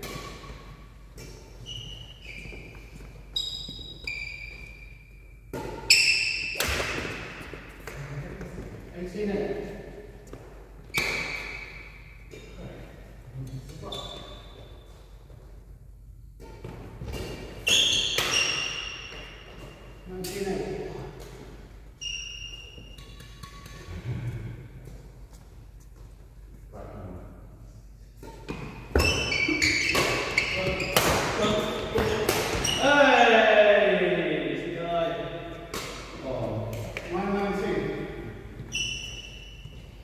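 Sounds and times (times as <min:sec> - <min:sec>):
shoes squeaking on wooden floor: 0:01.2 - 0:05.1, 0:28.4 - 0:32.8, 0:38.6 - 0:40.0
racquets smacking shuttlecock: 0:05.4 - 0:08.6, 0:22.4 - 0:23.9, 0:28.2 - 0:32.8, 0:35.7 - 0:37.1.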